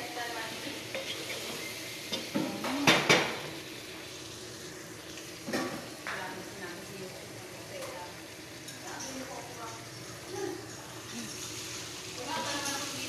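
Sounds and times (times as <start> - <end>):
chicken sizzling in a pot: 0.0 - 13.0.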